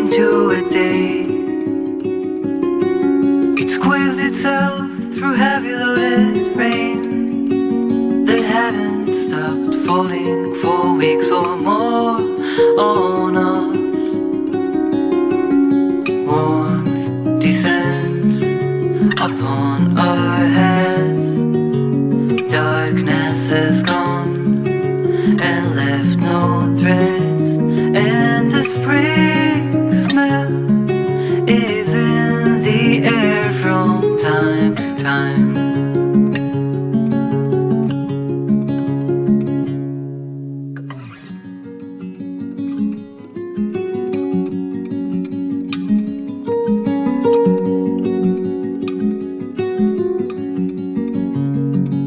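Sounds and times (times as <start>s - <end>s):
acoustic guitar strumming chords: 0.0s - 52.0s.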